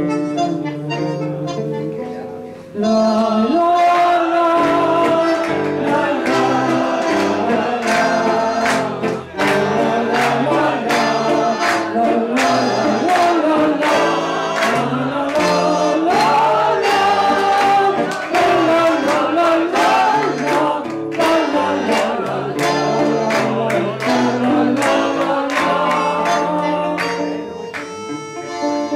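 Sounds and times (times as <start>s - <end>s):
tango on guitar and bandoneon: 0.0s - 28.9s
woman singing through microphone: 0.9s - 8.6s, 9.3s - 27.1s.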